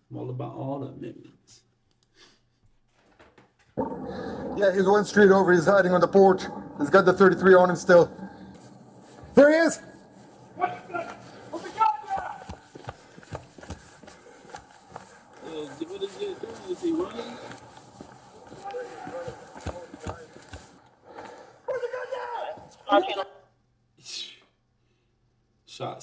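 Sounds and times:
indistinct voices: 3.8s - 13.4s, 14.0s - 23.2s
running footsteps: 6.5s - 21.4s.

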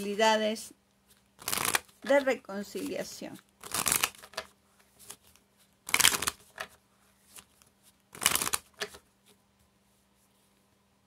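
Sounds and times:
playing cards shuffling: 1.0s - 9.4s.

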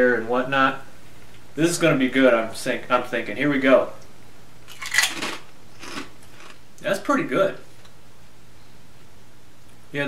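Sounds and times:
potato chip crunching: 4.7s - 6.6s.

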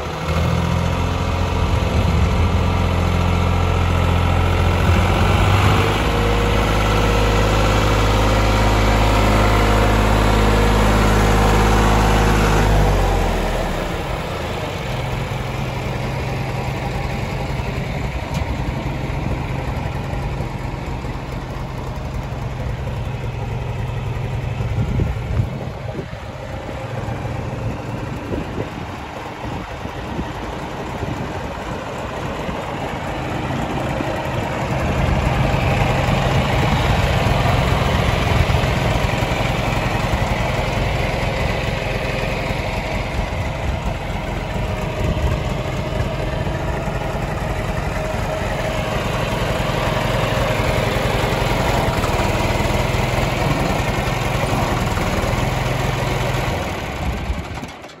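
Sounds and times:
backhoe engine running: 0.0s - 58.0s.

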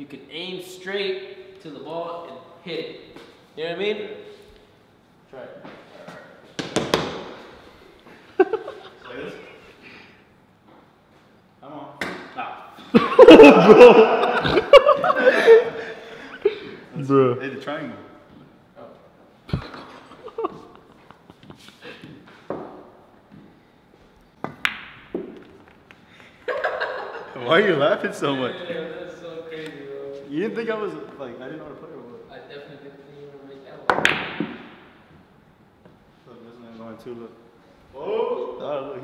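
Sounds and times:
billiard balls clacking: 24.4s - 26.1s, 33.9s - 35.2s.

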